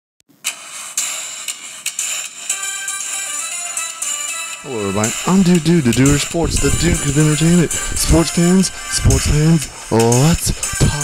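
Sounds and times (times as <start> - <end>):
sharp beats: 0.5 - 11.0
steady bright high-pitched tone: 4.6 - 9.9.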